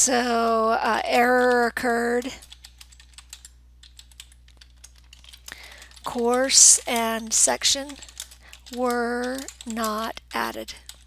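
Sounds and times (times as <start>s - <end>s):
typing on computer keyboard: 1.2s - 11.0s.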